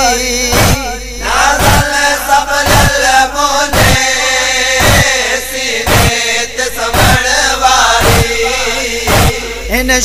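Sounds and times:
heavy drum beat: 0.0 - 9.9
men chanting a lament: 0.0 - 10.0.

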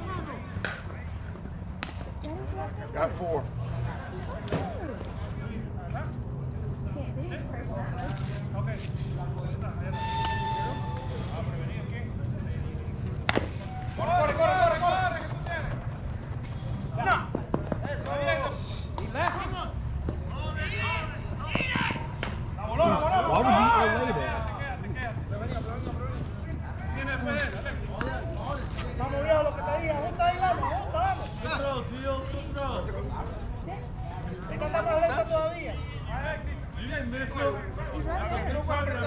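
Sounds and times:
players calling out: 18.0 - 25.6.

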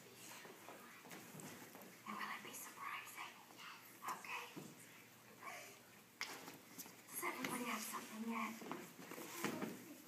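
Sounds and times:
whispered voices: 0.0 - 10.0.

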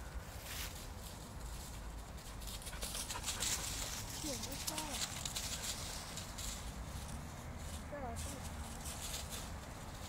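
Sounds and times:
paws scuffling through dry leaves: 0.1 - 10.0.

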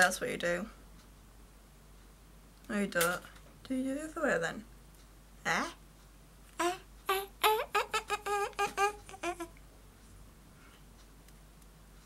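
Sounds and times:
woman making high-pitched hums: 6.6 - 9.6.

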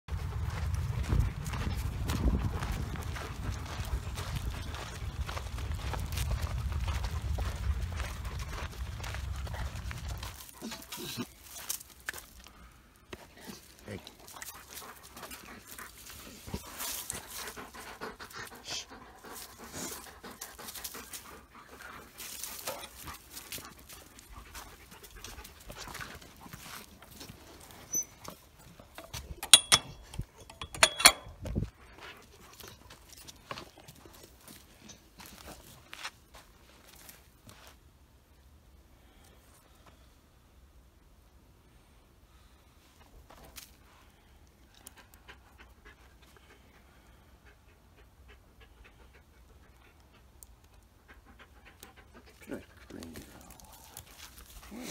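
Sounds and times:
low rumble on microphone: 0.1 - 10.4
dog panting: 13.2 - 28.1, 44.8 - 54.9.

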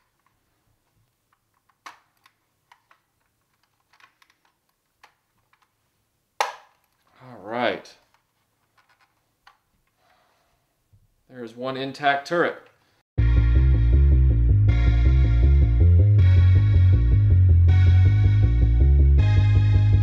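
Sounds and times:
plastic toy parts clicking: 0.0 - 5.8, 8.0 - 10.0.

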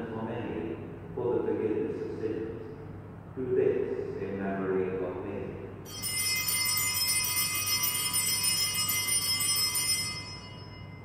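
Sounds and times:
altar bells ringing: 5.9 - 11.0.

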